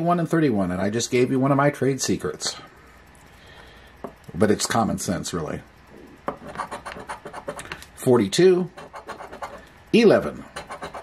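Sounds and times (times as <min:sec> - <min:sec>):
coin scraping scratch-off ticket: 0:06.4 - 0:07.6, 0:08.8 - 0:09.6, 0:10.6 - 0:11.0.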